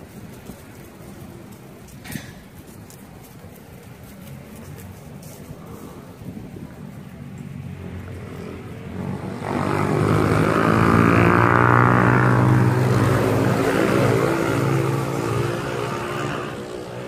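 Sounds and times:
vehicle engine droning: 0:03.6 - 0:17.0.

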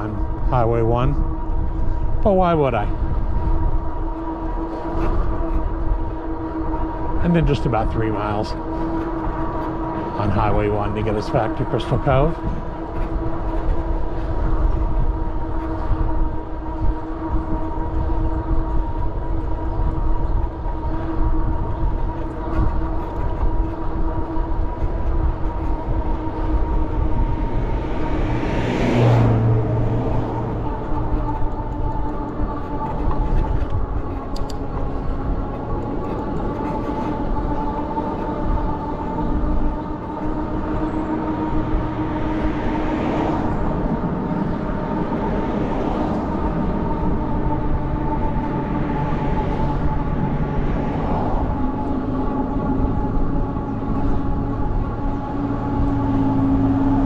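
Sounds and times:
electric bike motor whining: 0:00.0 - 0:57.0
road rumble: 0:00.0 - 0:57.0
wind: 0:00.0 - 0:57.0
loud whoosh: 0:26.7 - 0:30.9.

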